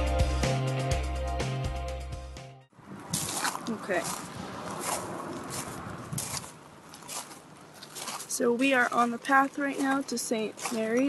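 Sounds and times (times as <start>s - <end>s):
music: 0.0s - 2.7s
footsteps on gravel: 2.8s - 11.0s
person speaking: 3.6s - 4.2s, 8.2s - 11.0s.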